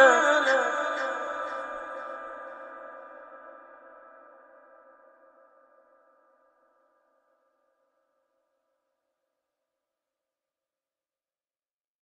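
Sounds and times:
echoing held recitation note: 0:00.0 - 0:03.3.

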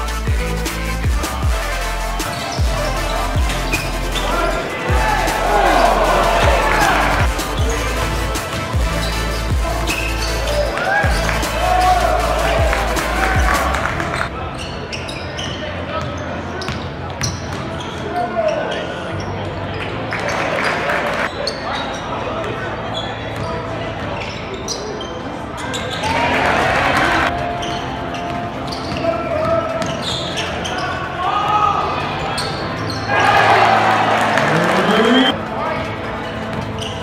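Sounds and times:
hum of crowd voices: 0:00.0 - 0:37.0
sneaker squeaks: 0:02.2 - 0:04.9, 0:08.5 - 0:11.3, 0:14.0 - 0:19.6, 0:20.2 - 0:26.3, 0:27.3 - 0:31.2, 0:32.1 - 0:33.4, 0:34.0 - 0:35.4, 0:36.3 - 0:37.0.

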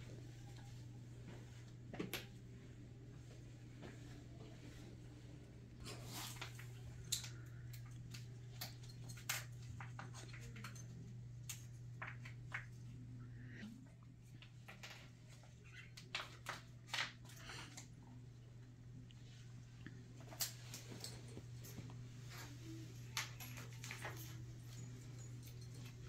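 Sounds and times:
steady low hum: 0:00.0 - 0:15.7.

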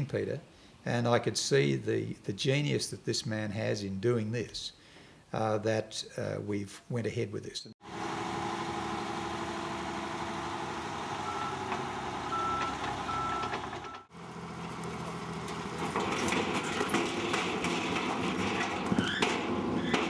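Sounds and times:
truck engine running: 0:07.8 - 0:19.9
reversing alarm beeping: 0:11.2 - 0:14.1.

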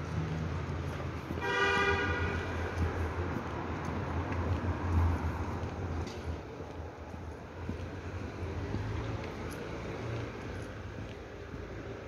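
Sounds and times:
vehicle horn toot: 0:01.4 - 0:02.4.

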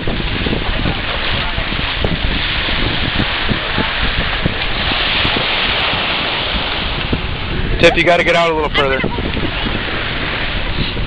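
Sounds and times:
surf: 0:00.0 - 0:11.0
wind buffeting microphone: 0:00.0 - 0:11.0
wind hiss: 0:00.0 - 0:11.0.

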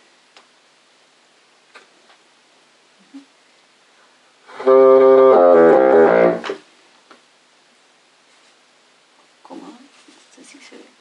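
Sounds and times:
bassoon playing: 0:04.5 - 0:06.6
faint rustling: 0:08.2 - 0:08.7, 0:09.5 - 0:10.9.

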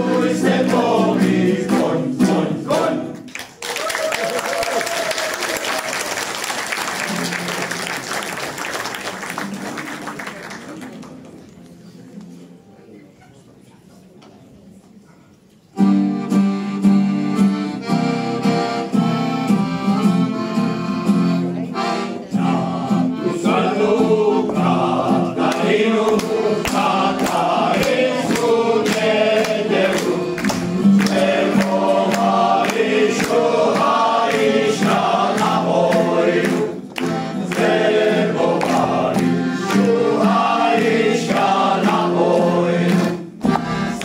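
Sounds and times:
accordion chords: 0:00.0 - 0:03.1, 0:15.7 - 0:44.0
choir singing: 0:00.0 - 0:03.3, 0:22.3 - 0:44.0.

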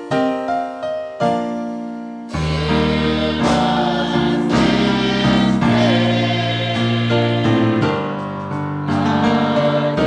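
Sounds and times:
electric piano chords: 0:00.0 - 0:10.0
choir singing gospel song: 0:02.3 - 0:10.0.

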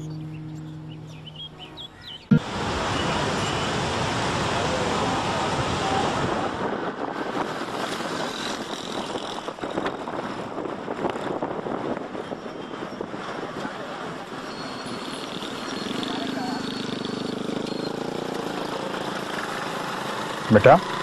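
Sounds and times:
road traffic hiss: 0:02.4 - 0:10.0.

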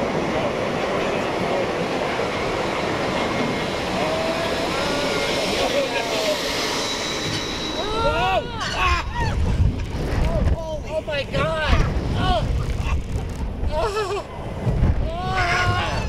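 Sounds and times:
roller coaster lift clatter: 0:00.0 - 0:16.0
riders screaming and whooping: 0:03.6 - 0:06.4, 0:07.2 - 0:10.9, 0:11.5 - 0:16.0
wind buffeting microphone: 0:06.4 - 0:16.0.

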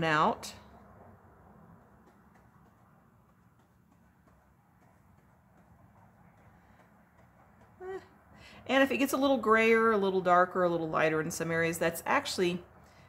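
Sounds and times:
faint room hum: 0:00.0 - 0:13.0.

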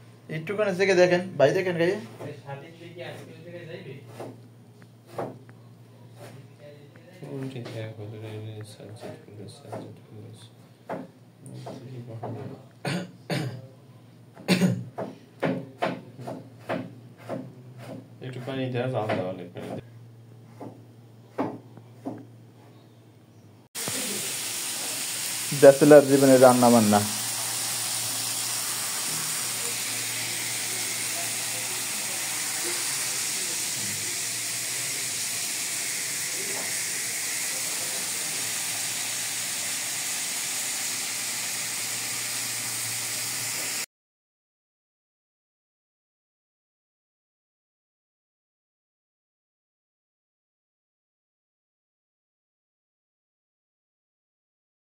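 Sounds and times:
gas burner hissing: 0:23.8 - 0:43.9.

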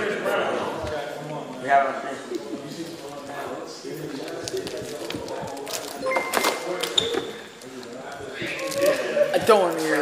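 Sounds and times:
background chatter: 0:00.0 - 0:10.0
electronic tester beeping: 0:06.0 - 0:07.2.

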